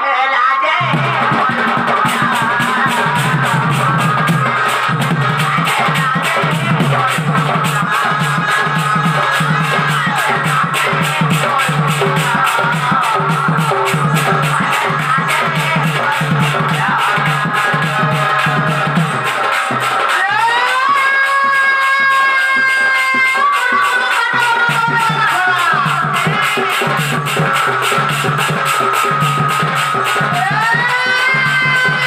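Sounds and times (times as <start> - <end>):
barrel drum beating fast: 0.8 - 32.0.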